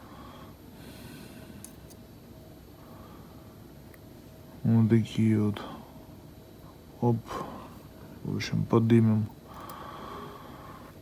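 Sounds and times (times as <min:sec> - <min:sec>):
faint breathing: 0:00.0 - 0:01.8, 0:02.7 - 0:03.7, 0:09.4 - 0:11.0.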